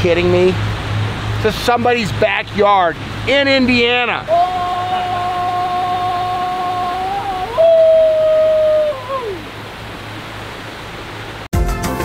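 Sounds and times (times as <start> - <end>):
waterfall rushing: 0.0 - 11.5
man yelling: 3.6 - 9.5.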